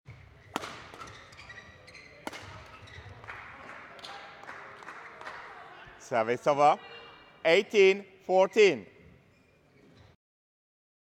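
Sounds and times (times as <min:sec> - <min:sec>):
racket hitting shuttlecock: 0:00.1 - 0:03.3
court shoes squeaking: 0:00.1 - 0:05.0, 0:08.6 - 0:10.2.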